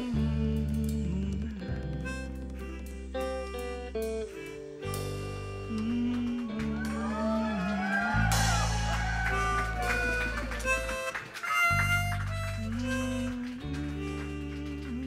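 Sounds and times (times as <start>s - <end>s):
bass guitar: 0.0s - 15.0s
blues harmonica solo: 0.0s - 15.0s
electric guitar: 0.0s - 15.0s
drums: 7.8s - 11.3s.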